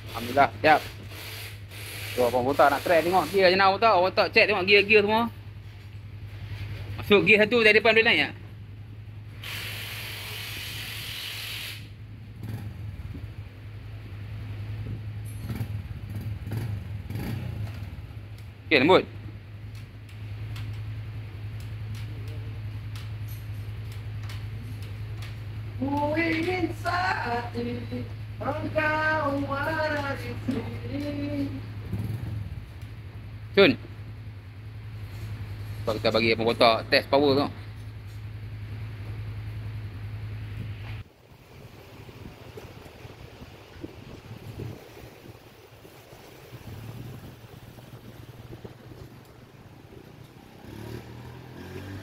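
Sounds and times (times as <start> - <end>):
loud hiss: 0.0 - 3.7, 9.3 - 12.0
motorcycle engine idling: 11.8 - 52.0.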